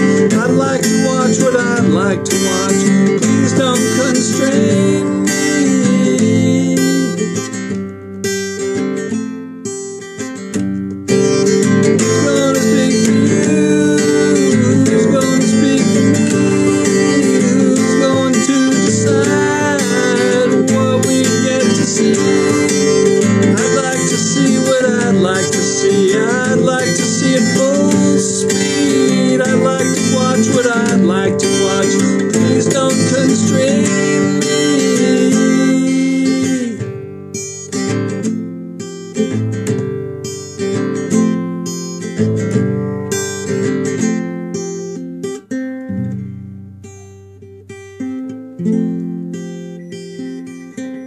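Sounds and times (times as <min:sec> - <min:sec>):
acoustic guitar strumming: 0:00.0 - 0:51.0.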